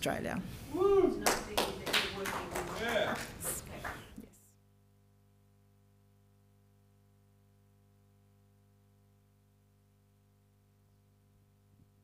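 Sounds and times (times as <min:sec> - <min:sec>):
scattered applause: 0:01.1 - 0:04.2.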